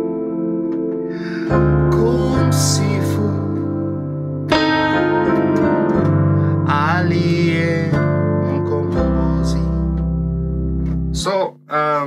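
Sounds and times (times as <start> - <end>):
piano playing hymn chords: 0.0 - 12.0
person singing: 1.1 - 5.4, 6.0 - 10.1.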